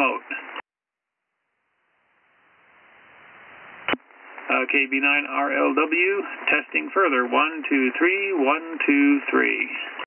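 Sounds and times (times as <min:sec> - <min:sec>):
radio receiver hiss: 0:01.8 - 0:10.0.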